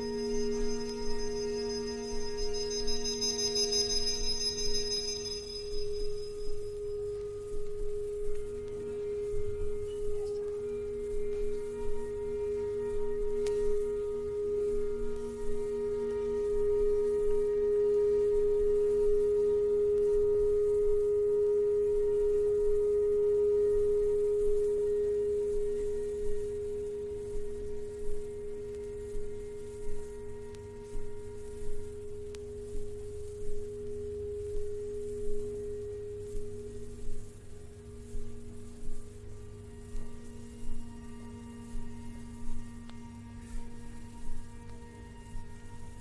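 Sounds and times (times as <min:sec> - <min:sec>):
electronic drone music: 0:00.0 - 0:18.2
soft pulse: 0:00.0 - 0:46.0.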